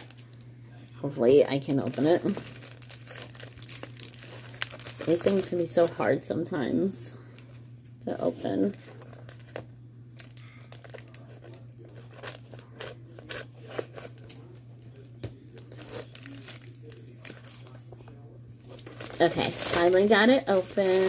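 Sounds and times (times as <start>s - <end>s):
plastic bag crinkling and tearing: 0.0s - 0.5s, 1.7s - 6.1s, 8.6s - 17.8s, 18.6s - 21.0s
steady low hum: 0.0s - 21.0s.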